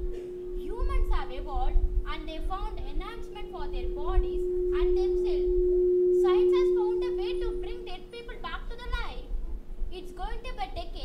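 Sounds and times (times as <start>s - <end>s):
steady single-pitched tone: 0.0s - 9.9s
girl speaking: 0.6s - 5.4s, 6.2s - 11.0s.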